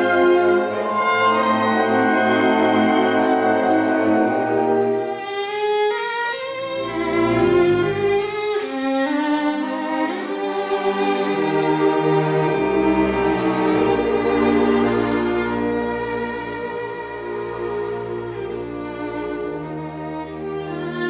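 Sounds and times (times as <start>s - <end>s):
solo violin melody: 0.0s - 21.0s
string orchestra accompaniment: 0.0s - 21.0s.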